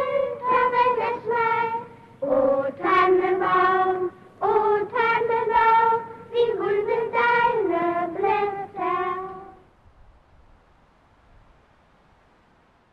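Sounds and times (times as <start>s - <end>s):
children singing in unison: 0.0s - 9.6s.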